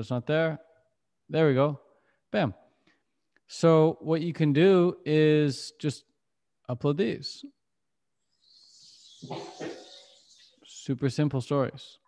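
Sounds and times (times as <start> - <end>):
dog-like vocalisation: 8.4 - 10.9.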